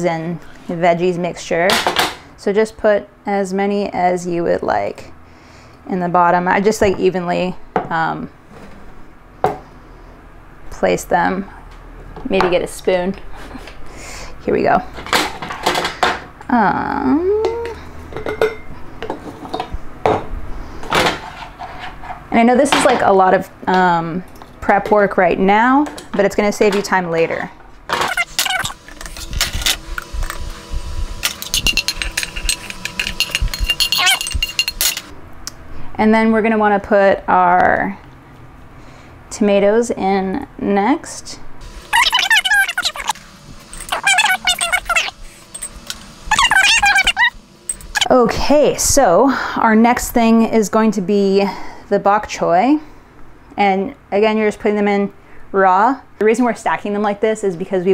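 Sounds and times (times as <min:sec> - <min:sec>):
sped-up voice chatter: 0:42.0 - 0:43.2, 0:43.9 - 0:45.2, 0:46.3 - 0:47.4.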